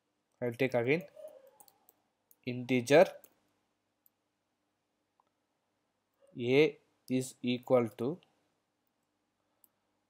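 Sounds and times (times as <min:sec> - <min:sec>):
person speaking: 0:02.4 - 0:03.4, 0:06.4 - 0:08.3.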